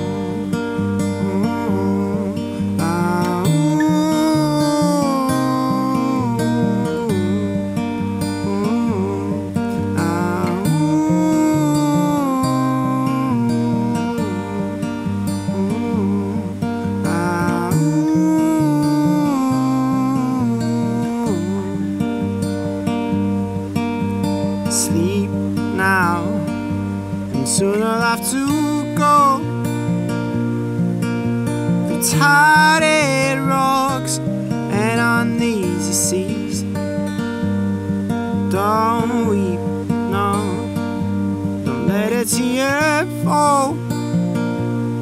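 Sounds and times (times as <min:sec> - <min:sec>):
man singing wordless note: 0:00.0 - 0:07.6, 0:08.4 - 0:22.0, 0:24.7 - 0:26.5, 0:27.4 - 0:29.5, 0:32.0 - 0:36.8, 0:38.5 - 0:40.8, 0:41.8 - 0:43.8
acoustic guitar playing softly: 0:00.0 - 0:45.0.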